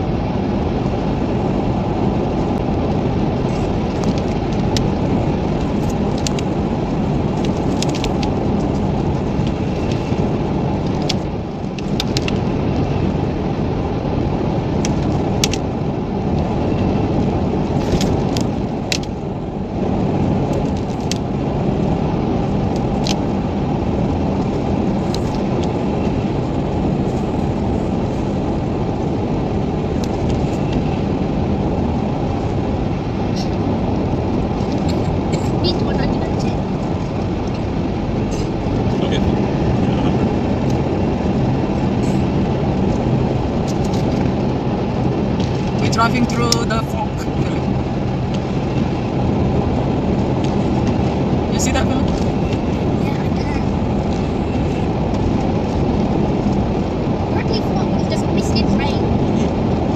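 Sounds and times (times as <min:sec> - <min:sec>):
car road and engine drone: 0:00.0 - 0:59.9.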